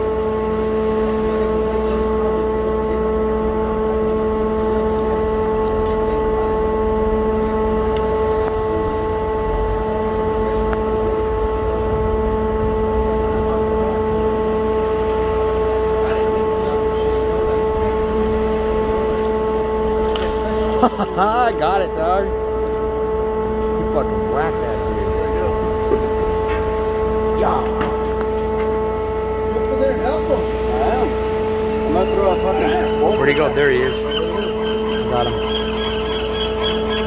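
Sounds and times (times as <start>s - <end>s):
steady mechanical hum: 0.0s - 37.0s.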